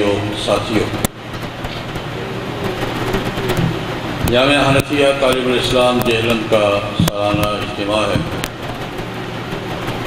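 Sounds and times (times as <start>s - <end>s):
hall noise: 0.0s - 10.0s
public address system hum and hiss: 0.0s - 10.0s.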